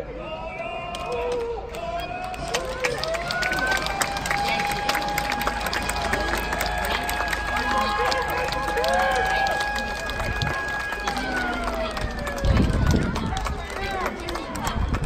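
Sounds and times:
players' voices: 0.0 - 15.0.

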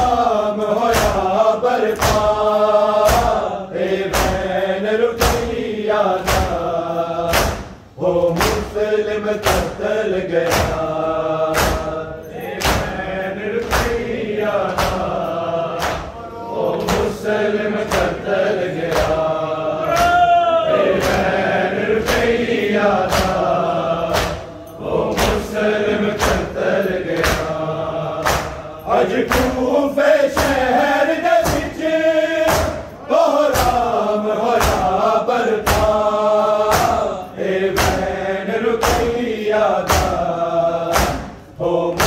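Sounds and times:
men chanting: 0.0 - 42.0
hands slapping on chests: 0.8 - 4.5, 5.2 - 5.6, 6.2 - 6.7, 7.3 - 9.8, 10.4 - 10.9, 11.5 - 16.2, 16.8 - 29.6, 32.4 - 38.2, 38.8 - 42.0.

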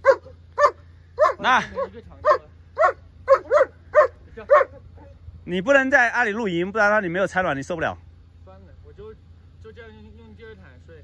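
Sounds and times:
dog barking: 0.0 - 5.2.

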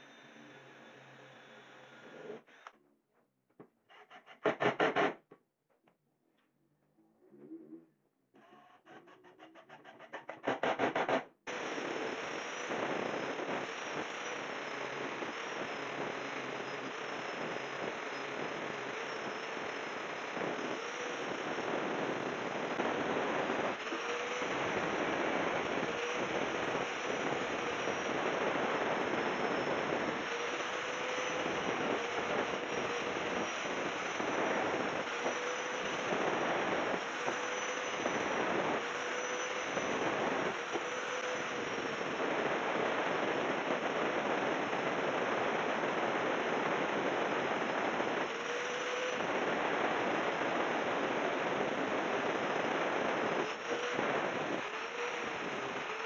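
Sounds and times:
angle grinder grinding wood: 11.5 - 42.0, 48.3 - 49.2, 53.4 - 56.0.

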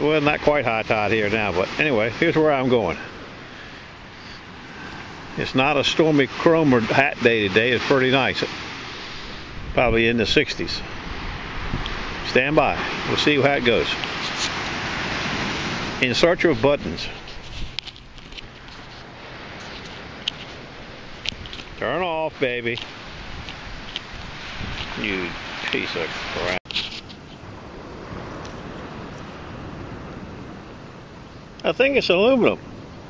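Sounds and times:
ocean surf breaking on beach: 0.0 - 33.0
wind buffeting microphone: 5.0 - 26.5.

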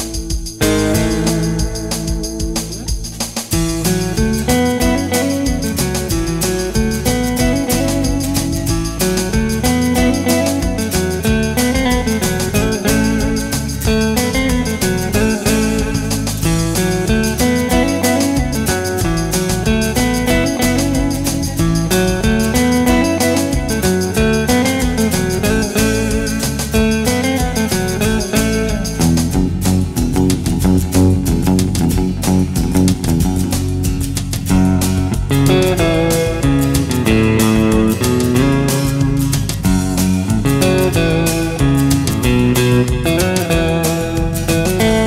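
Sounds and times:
backing track with bass and drums: 0.0 - 45.0
electric guitar melody: 0.0 - 45.0.

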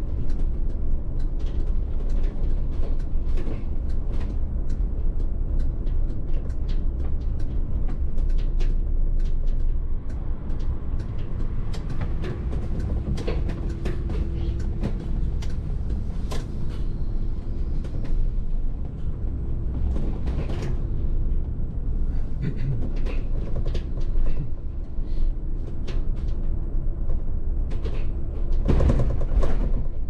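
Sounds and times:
bus road and drivetrain rumble: 0.0 - 30.0
clicks and rattles in cab: 10.5 - 16.6.

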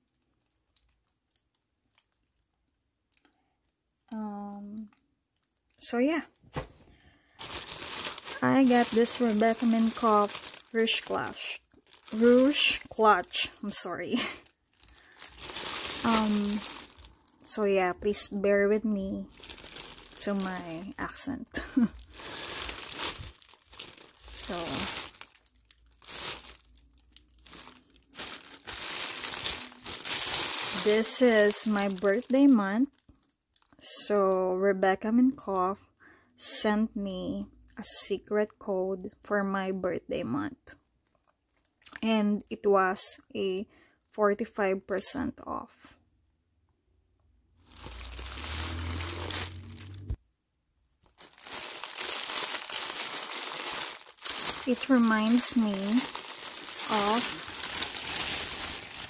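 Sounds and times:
plastic bag crinkling: 0.0 - 2.3, 6.9 - 34.1, 47.6 - 50.2, 51.0 - 59.0.

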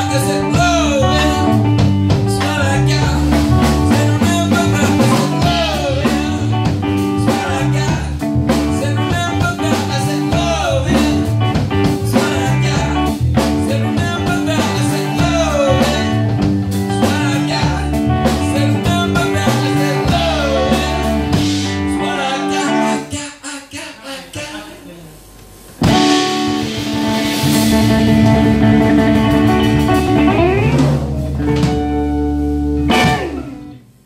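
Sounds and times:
drum kit: 0.0 - 22.1, 25.2 - 34.0
distorted electric guitars: 0.0 - 23.2, 25.2 - 34.0
lead vocals: 0.0 - 32.1.

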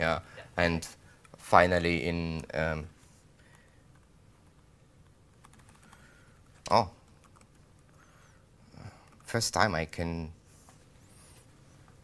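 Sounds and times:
laptop keyboard typing: 3.5 - 8.0, 9.0 - 9.3.

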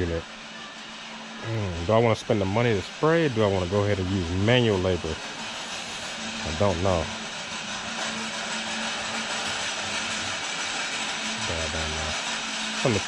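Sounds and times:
store interior hiss: 0.0 - 13.0
man murmuring: 1.4 - 1.8.

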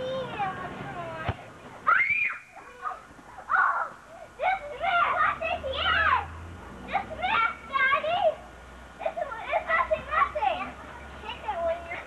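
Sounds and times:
children shouting and squealing: 0.0 - 12.0.

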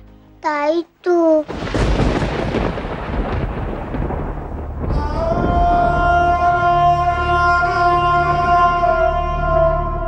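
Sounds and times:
thunder-like crash: 1.5 - 7.5.

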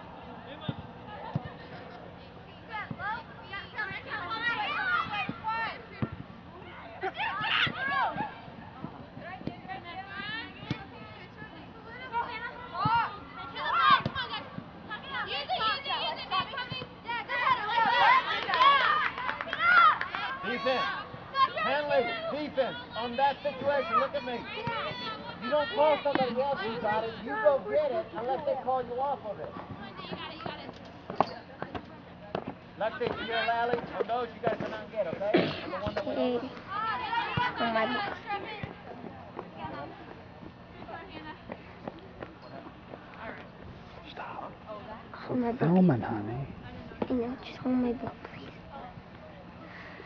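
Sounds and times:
voices shouting and calling: 0.0 - 41.5
children shouting: 7.1 - 8.3, 17.2 - 22.3.

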